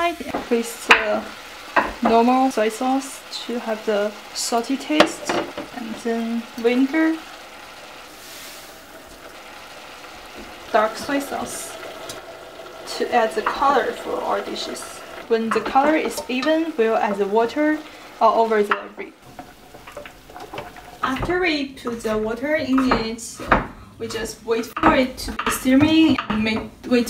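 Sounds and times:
ribs sizzling in a pot: 0:00.0 - 0:23.1
spatula scraping and tapping: 0:18.7 - 0:22.0.

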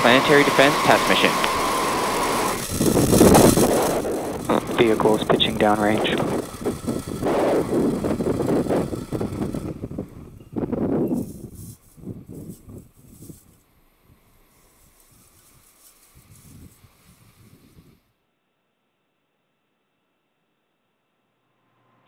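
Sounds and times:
rocket engines roaring: 0:00.0 - 0:11.1.

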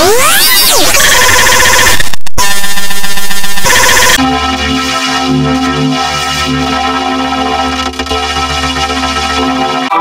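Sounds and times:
distorted electronic sound effects: 0:00.0 - 0:04.2.

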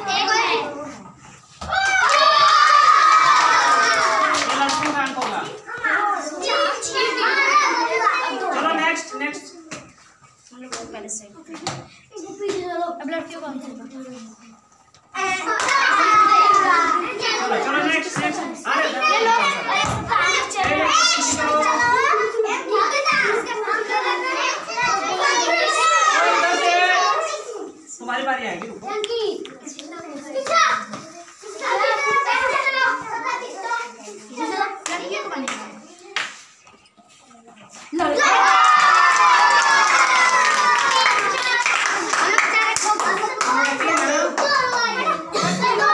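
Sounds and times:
children shouting: 0:01.6 - 0:05.0, 0:05.7 - 0:08.7, 0:15.2 - 0:17.8, 0:18.7 - 0:27.8, 0:30.4 - 0:33.9, 0:38.0 - 0:45.9
sharp claps or slaps: 0:34.8 - 0:36.5.

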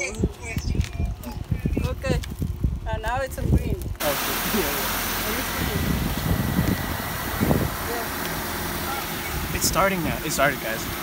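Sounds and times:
car engine idling: 0:04.0 - 0:11.0.

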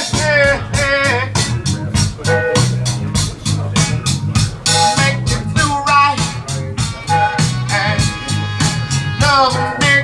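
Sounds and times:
bass: 0:00.0 - 0:10.0
song with singing voice: 0:00.0 - 0:10.0
steady beat: 0:00.0 - 0:10.0.

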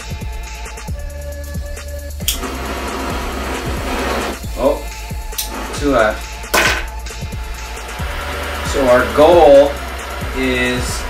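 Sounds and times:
butane torch hissing: 0:00.0 - 0:11.0
hip-hop music with deep bass: 0:00.0 - 0:11.0
sharp click: 0:02.2 - 0:02.4.

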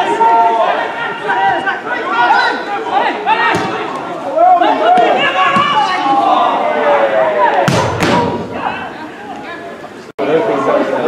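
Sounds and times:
players and spectators calling out: 0:00.0 - 0:11.0.

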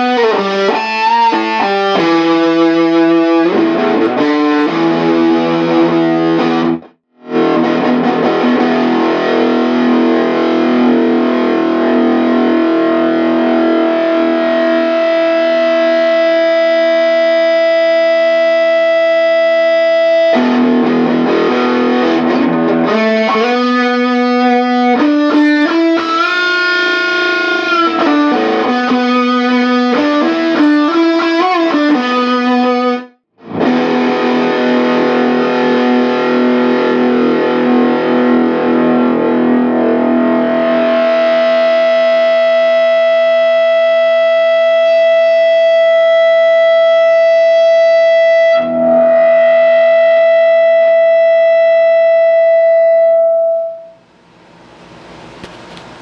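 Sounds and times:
distorted electric guitar: 0:00.0 - 0:56.0.

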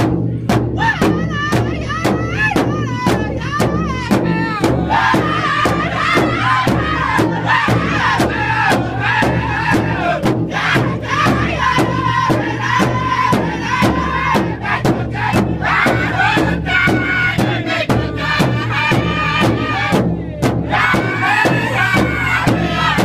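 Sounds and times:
large drum beats: 0:00.0 - 0:23.0
men singing in unison: 0:00.8 - 0:23.0.

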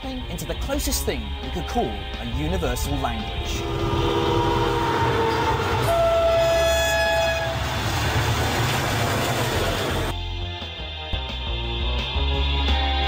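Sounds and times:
train wheels rumbling on rails: 0:02.8 - 0:10.2
train horn blasts: 0:03.4 - 0:08.0.

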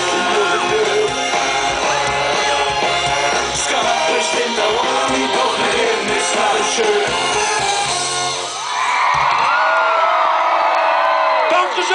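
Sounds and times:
bass guitar: 0:00.0 - 0:08.6
drums: 0:00.0 - 0:10.0
crowd cheering and whooping: 0:07.2 - 0:11.9.

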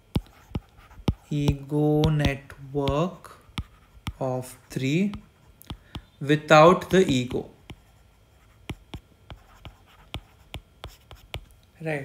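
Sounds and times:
stylus tapping on glass screen: 0:00.1 - 0:04.2, 0:05.0 - 0:06.2, 0:06.8 - 0:07.8.

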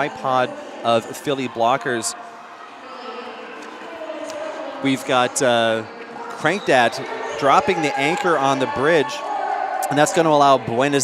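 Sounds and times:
murmur of distant voices: 0:00.0 - 0:11.0.

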